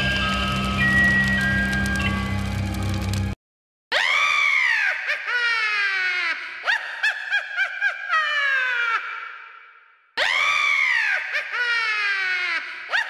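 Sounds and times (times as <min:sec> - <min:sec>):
high-pitched cackling laugh: 0:04.8 - 0:09.3, 0:11.1 - 0:13.0.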